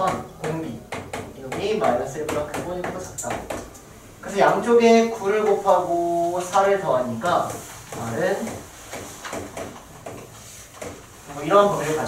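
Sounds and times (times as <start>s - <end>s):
chalk tapping and scraping on chalkboard: 5.4s - 12.0s
man talking: 11.3s - 12.0s.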